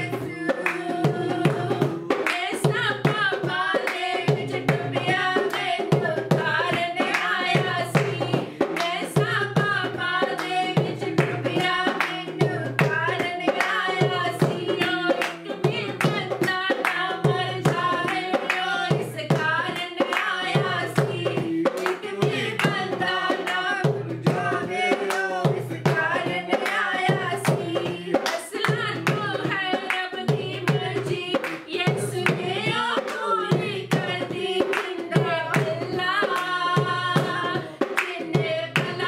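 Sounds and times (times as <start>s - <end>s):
women singing: 0.0s - 39.0s
hands clapping: 2.2s - 2.6s, 7.1s - 7.4s, 8.8s - 9.0s, 11.2s - 12.2s, 15.2s - 17.0s, 17.7s - 18.7s, 20.0s - 20.3s, 21.7s - 22.8s, 26.6s - 26.9s, 28.2s - 29.2s, 31.4s - 32.4s, 34.6s - 35.7s, 38.0s - 38.9s.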